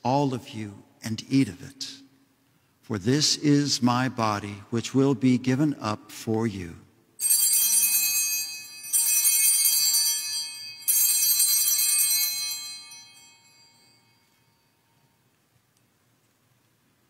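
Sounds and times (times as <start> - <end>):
altar bells ringing: 7.2 - 15.3.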